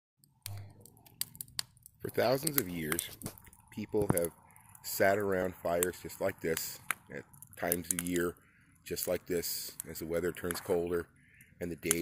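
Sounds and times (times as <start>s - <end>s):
wood fire crackling and popping: 0.2s - 12.0s.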